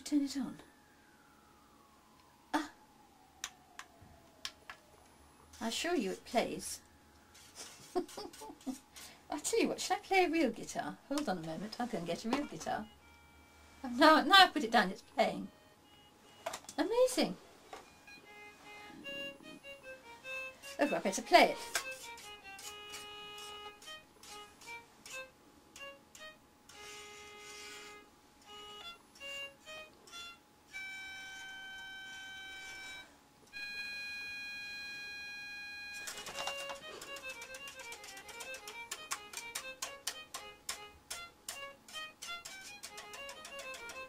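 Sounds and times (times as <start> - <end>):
toy violin electronic melody: 12.0 - 14.1, 15.3 - 16.7, 17.8 - 44.0.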